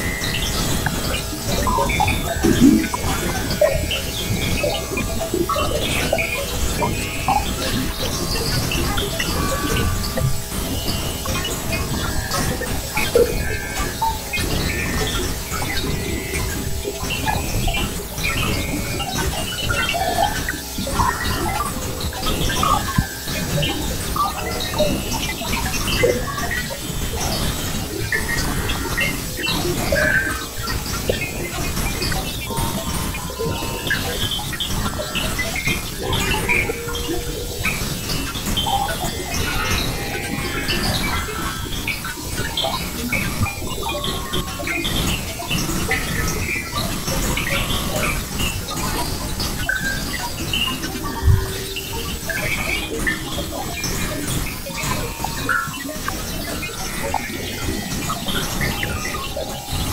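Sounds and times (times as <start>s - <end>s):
crackling noise music: 0.0s - 59.9s.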